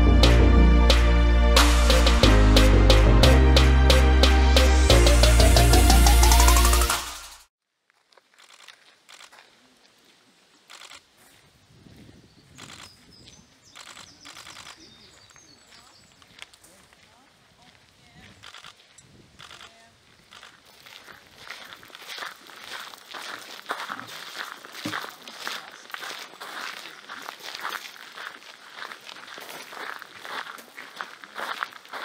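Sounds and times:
footsteps on gravel: 0:07.9 - 0:10.2, 0:11.1 - 0:11.5, 0:12.6 - 0:32.0
small birds chirping: 0:12.0 - 0:17.2
grainy crunching noises: 0:13.8 - 0:32.0.

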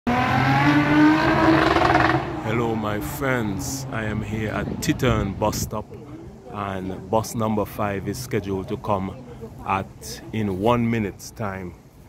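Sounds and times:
vehicle engine accelerating: 0:00.1 - 0:04.8.

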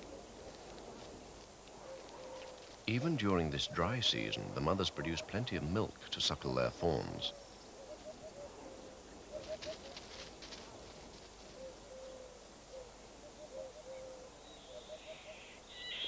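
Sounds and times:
faint low bird calls: 0:00.0 - 0:06.2, 0:06.9 - 0:16.0.

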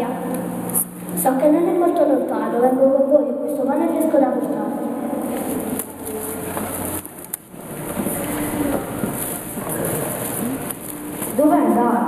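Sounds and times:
child speaking into microphone: 0:00.0 - 0:00.4, 0:01.2 - 0:05.8, 0:11.2 - 0:12.0.

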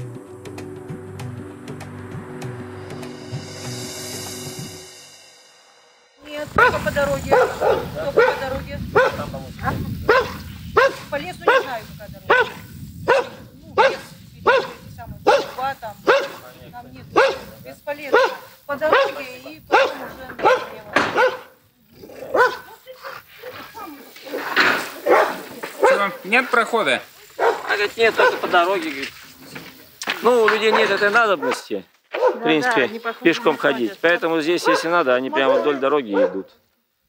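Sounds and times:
dog barking: 0:06.6 - 0:21.6, 0:22.3 - 0:23.5, 0:24.9 - 0:26.3, 0:27.4 - 0:28.5, 0:30.6 - 0:32.6, 0:33.2 - 0:33.9, 0:34.5 - 0:36.6.

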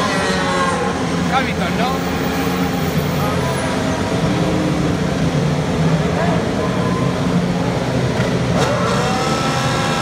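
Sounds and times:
racing car engines droning: 0:00.0 - 0:10.0.

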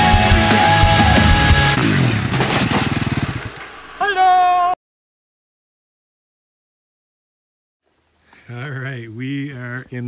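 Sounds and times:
quad engine running: 0:00.0 - 0:04.0.

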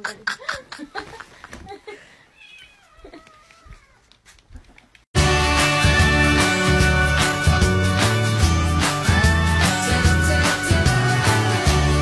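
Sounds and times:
cat meowing faintly: 0:02.3 - 0:04.1.

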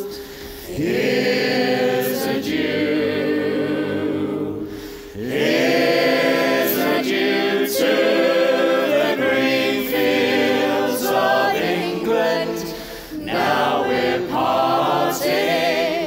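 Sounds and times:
choir singing in harmony: 0:00.0 - 0:16.0.

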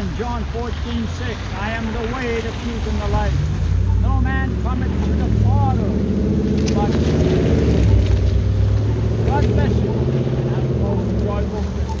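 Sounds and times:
vehicle engines droning: 0:00.0 - 0:12.0.

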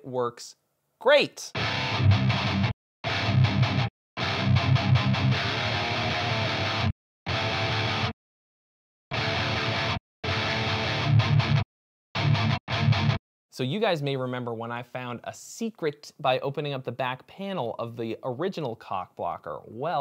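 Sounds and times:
distorted electric guitar riff: 0:01.6 - 0:08.1, 0:09.1 - 0:11.6, 0:12.2 - 0:13.2.

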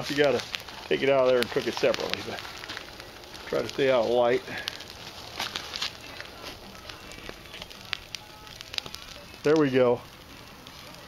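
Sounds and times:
burning logs popping: 0:00.0 - 0:11.0
campfire crackling: 0:00.0 - 0:11.0.

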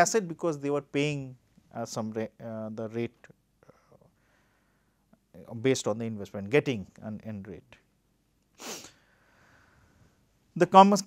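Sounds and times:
man breathing through nose: 0:08.6 - 0:10.1.

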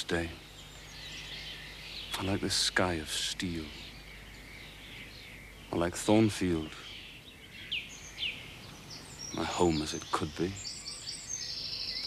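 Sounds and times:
birds chirping: 0:00.0 - 0:12.0
faint outdoor hiss: 0:00.0 - 0:12.0.

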